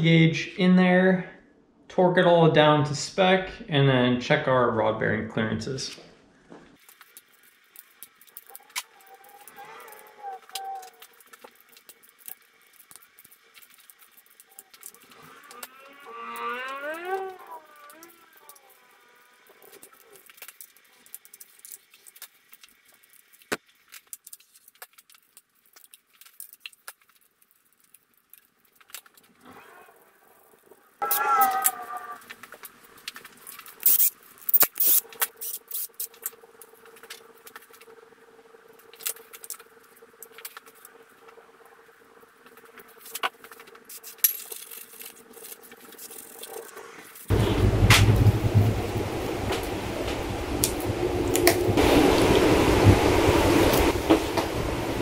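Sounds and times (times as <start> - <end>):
ratchet wrench clicking: 33.8 - 36.1.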